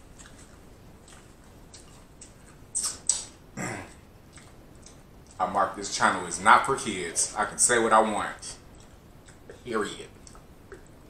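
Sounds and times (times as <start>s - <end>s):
wet mouth smacks: 0.2s - 3.4s
low grunt of enjoyment: 3.6s - 4.0s.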